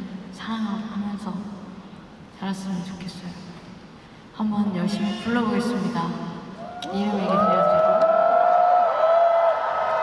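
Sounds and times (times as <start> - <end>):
concert crowd cheering: 6.6 - 10.0.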